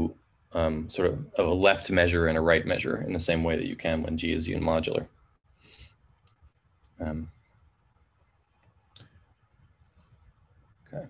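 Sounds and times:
faint clicks: 6.1 - 7.0.

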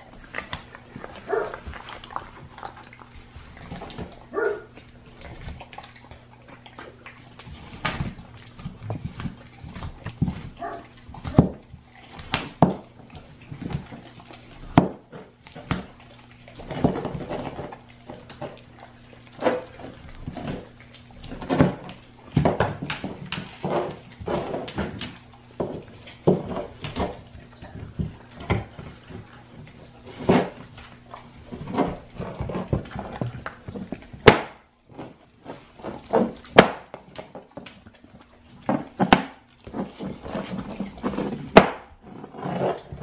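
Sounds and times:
teeth cracking on bone: 0.0 - 42.0
dog chewing on bone: 0.0 - 43.0.

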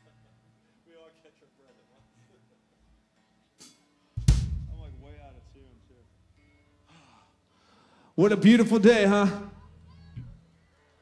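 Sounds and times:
drum kit hit ringing: 4.2 - 5.9.

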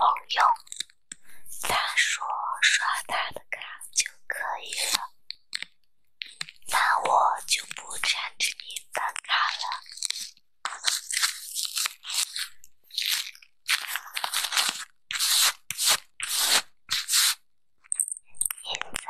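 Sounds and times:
wrapper crinkling: 9.4 - 17.4.

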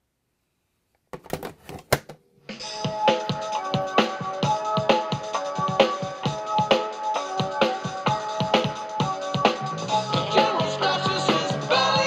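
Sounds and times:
music from cartridge player: 2.5 - 12.0.

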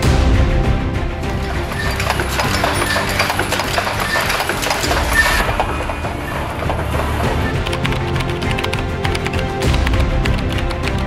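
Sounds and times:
machine clattering with rapid clicks: 1.4 - 11.0.

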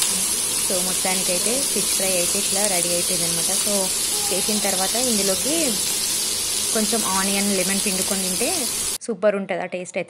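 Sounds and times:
person talking: 0.0 - 5.9, 6.7 - 9.7
fish sizzling in oil: 0.0 - 9.0.

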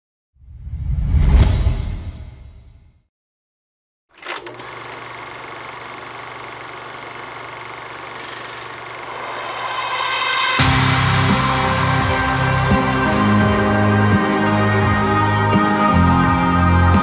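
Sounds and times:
deep whoosh: 0.4 - 2.9
sustained drone: 8.9 - 16.2.

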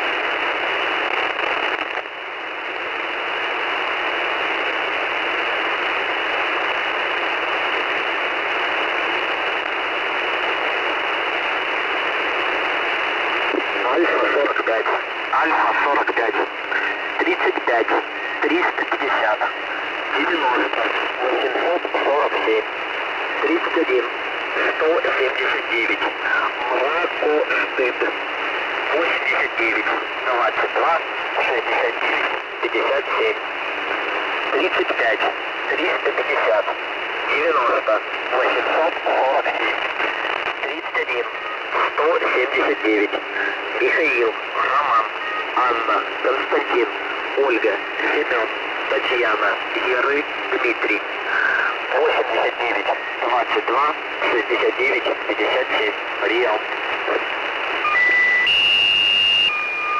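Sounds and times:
radio static: 0.0 - 59.9
voice over shortwave radio: 13.5 - 33.5, 34.4 - 58.0.

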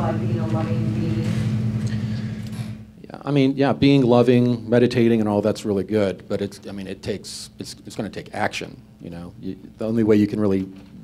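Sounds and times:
low electrical hum: 0.0 - 11.0.

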